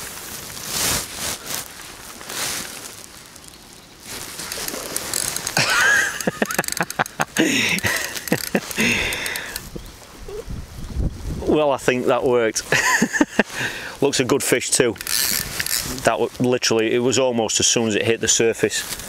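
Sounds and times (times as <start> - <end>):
fishing reel ticking: 4.4 - 7.2, 7.8 - 9.7, 15.0 - 16.0.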